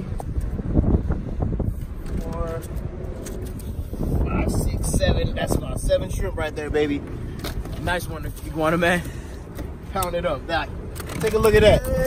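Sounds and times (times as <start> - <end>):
wind rumble on microphone: 0.0 - 12.0
voices: 9.9 - 12.0.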